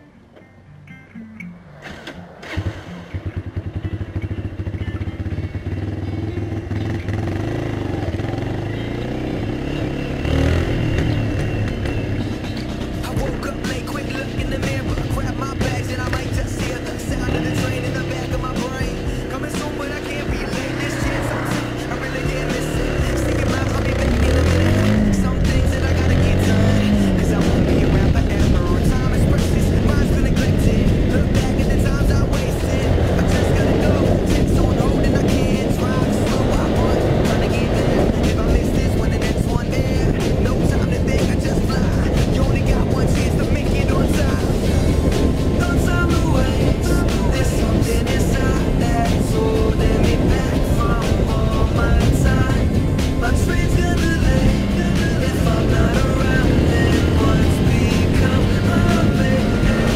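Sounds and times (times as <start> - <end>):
motorcycle engine accelerating: 1.7 - 59.9
wind rush: 18.7 - 59.8.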